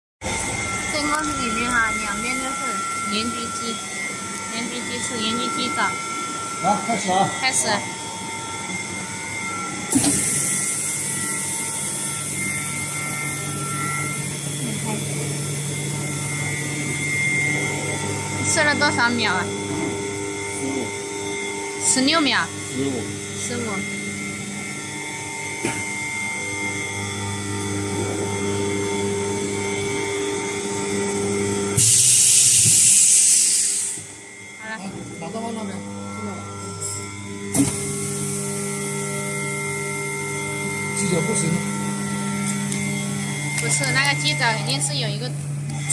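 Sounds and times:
packaging machine humming: 0:00.2 - 0:34.0, 0:34.8 - 0:45.9.

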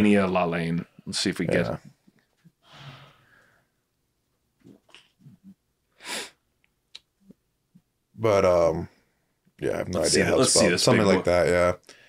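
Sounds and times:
sharp burst of breath: 0:02.6 - 0:03.7, 0:06.0 - 0:06.4.

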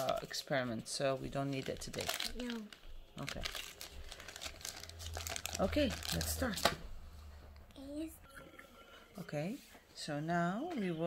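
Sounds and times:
plastic packaging crinkling: 0:01.2 - 0:06.8.

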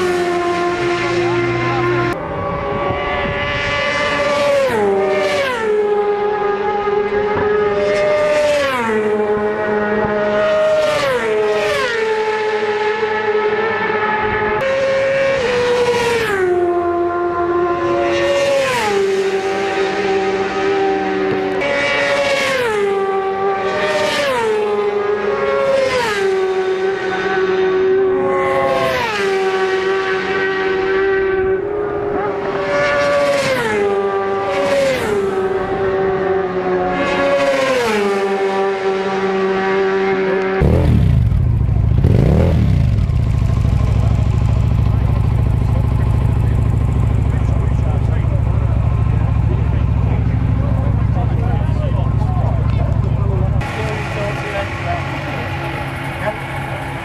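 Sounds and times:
engine rev: 0:00.0 - 0:57.0
racing motorcycles passing: 0:00.0 - 0:57.0
wind rumble on microphone: 0:02.2 - 0:04.2.

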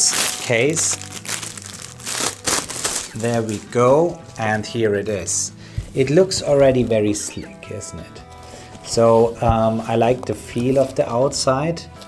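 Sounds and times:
plastic wrapping crinkling: 0:00.0 - 0:04.6.

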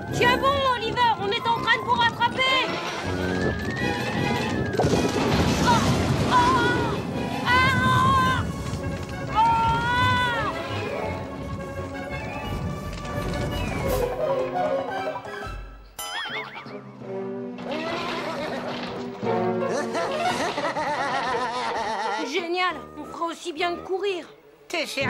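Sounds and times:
cartoon soundtrack music: 0:09.3 - 0:20.6
wavering held tones: 0:16.0 - 0:16.7.

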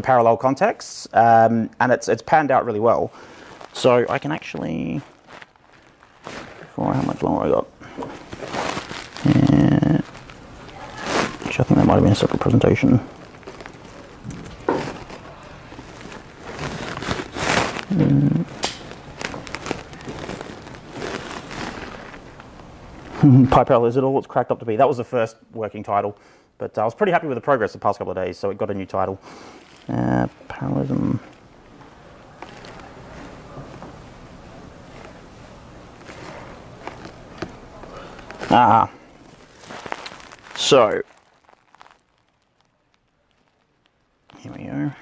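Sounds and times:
room noise hiss: 0:00.0 - 0:45.0.

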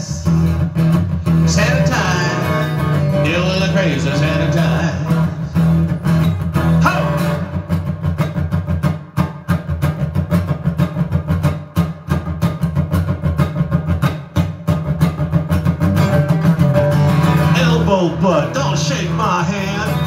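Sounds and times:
acoustic guitar strumming: 0:00.0 - 0:20.0.

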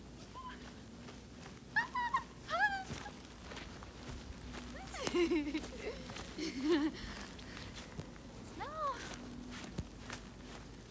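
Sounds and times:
woman laughing: 0:01.7 - 0:03.2, 0:04.8 - 0:07.3
woman squealing: 0:01.8 - 0:03.2.

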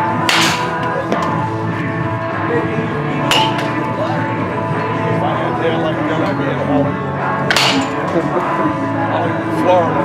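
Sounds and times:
background music: 0:00.0 - 0:10.0
bat cracking on ball: 0:00.2 - 0:01.5, 0:03.2 - 0:03.8, 0:07.5 - 0:08.1.

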